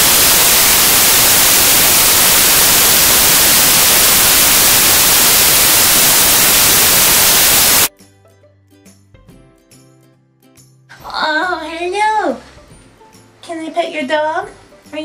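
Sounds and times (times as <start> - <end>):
loud static hiss: 0.0 - 7.9.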